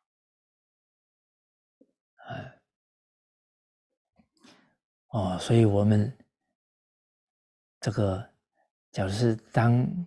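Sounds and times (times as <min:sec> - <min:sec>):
faint breath: 0:04.4 - 0:04.8.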